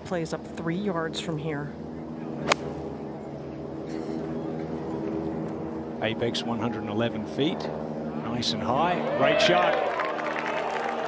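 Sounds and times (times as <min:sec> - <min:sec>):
steady hum: 0:00.0 - 0:08.8
golf club striking ball: 0:02.4 - 0:03.0.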